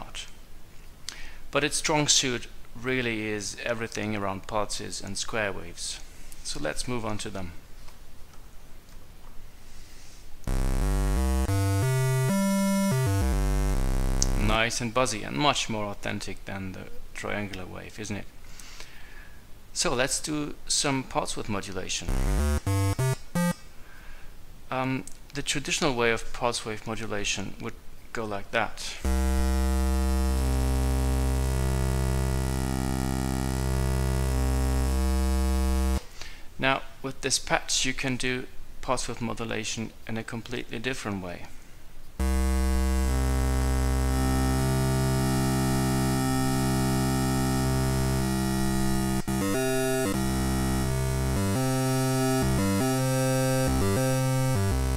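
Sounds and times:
buzzy square wave synthesizer notes: 10.5 - 14.7, 22.1 - 23.6, 29.0 - 36.0, 42.2 - 54.9.

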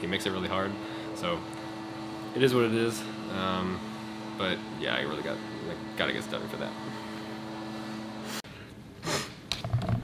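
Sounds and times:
ventilation hum: 0.0 - 10.0.

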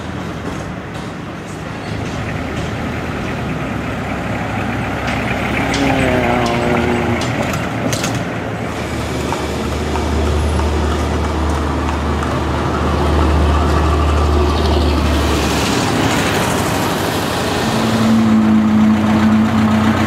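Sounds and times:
street traffic engine rumble: 0.0 - 20.0.

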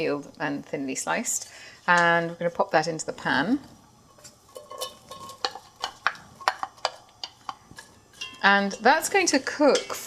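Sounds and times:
knife scraping glass bowl: 4.2 - 7.0.

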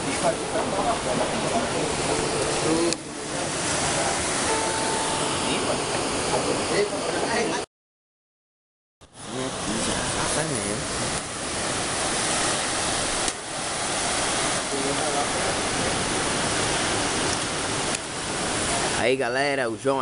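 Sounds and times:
sea surf: 0.0 - 7.7, 9.1 - 20.0
wind: 0.0 - 7.7, 9.0 - 20.0.

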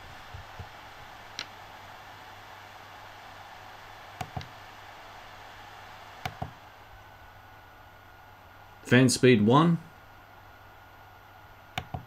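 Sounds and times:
cooling fan hiss: 0.0 - 12.0.

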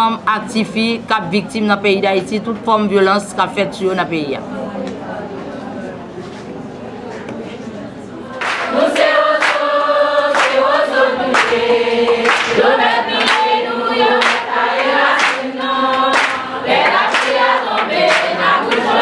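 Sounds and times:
women singing in unison: 8.2 - 19.0
rhythmic hand clapping: 8.3 - 19.0.

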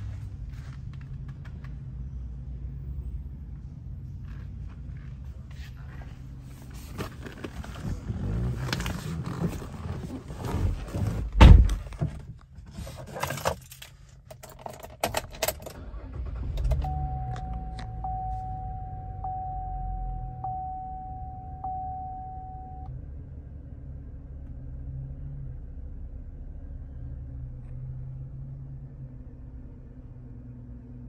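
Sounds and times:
car engine idling: 15.8 - 29.9.

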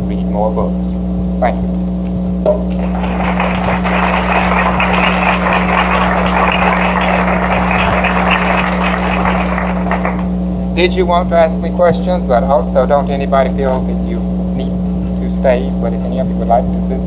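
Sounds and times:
steady low hum: 0.0 - 17.0
audience applauding: 2.7 - 10.3.

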